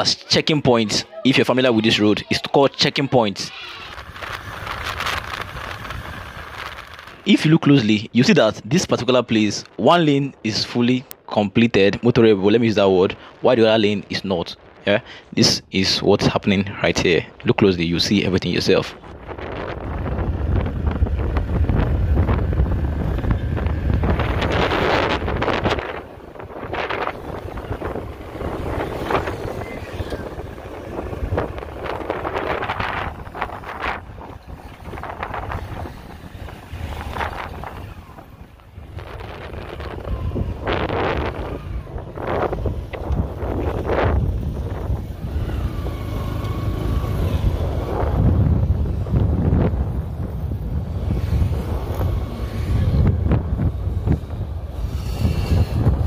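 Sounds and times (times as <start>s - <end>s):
wind rumbling on microphone: 0.0s - 56.0s
road traffic passing: 0.8s - 8.3s, 18.9s - 56.0s.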